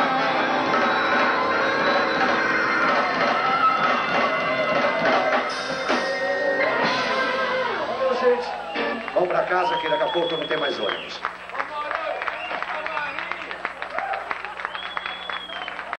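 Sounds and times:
drum and cymbal hits: 0:00.0 - 0:07.8
blues band playing live: 0:00.0 - 0:09.5.

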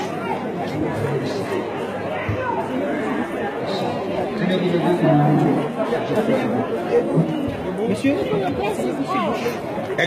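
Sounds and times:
many people chattering: 0:00.0 - 0:10.0.

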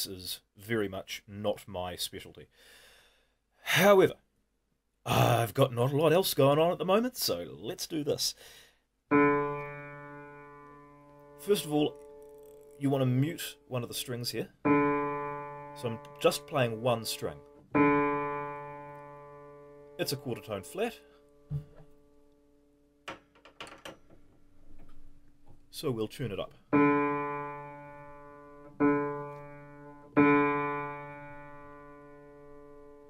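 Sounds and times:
piano note ringing: 0:09.1 - 0:13.9, 0:14.6 - 0:21.5, 0:26.7 - 0:33.0
dull thump: 0:21.5 - 0:21.9.

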